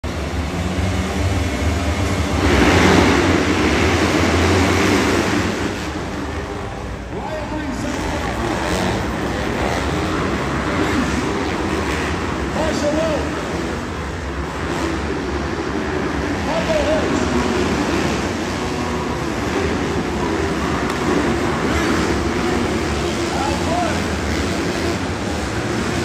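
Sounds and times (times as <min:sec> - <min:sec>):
dirt bikes revving and racing: 0:00.0 - 0:26.0
voices: 0:06.1 - 0:13.8, 0:16.2 - 0:17.7, 0:22.2 - 0:24.5.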